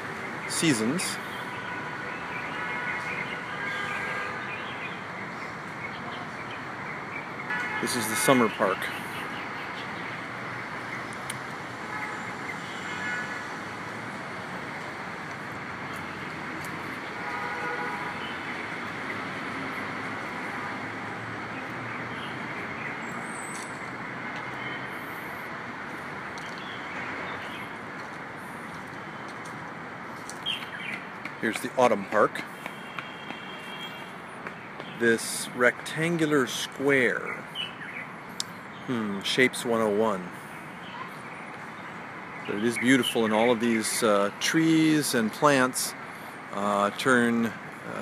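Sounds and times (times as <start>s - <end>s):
distant city traffic hum: 0.0s - 48.0s.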